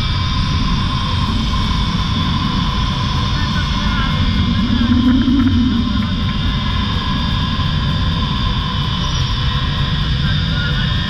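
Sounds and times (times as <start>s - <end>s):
trolley wheels whining on cable: 0.0s - 10.9s
wind rushing over microphone: 0.0s - 11.0s.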